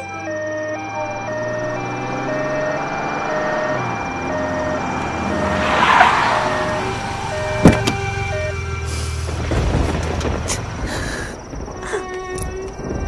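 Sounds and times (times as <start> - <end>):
held music notes: 0.0 - 9.4
vehicle engine humming: 0.0 - 12.9
rising whoosh: 1.5 - 8.3.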